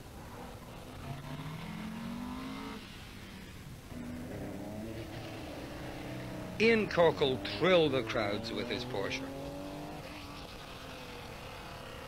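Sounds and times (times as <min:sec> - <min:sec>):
rally car engine accelerating: 0:00.2 - 0:12.0.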